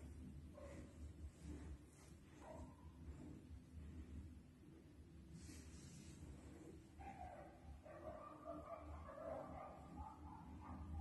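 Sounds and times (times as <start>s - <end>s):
distant dogs yelping and whining: 7.0s - 11.0s.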